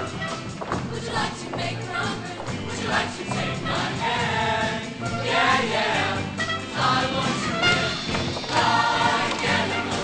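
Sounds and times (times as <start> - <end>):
instrumental accompaniment: 0.0 - 10.0
choir singing: 1.0 - 10.0.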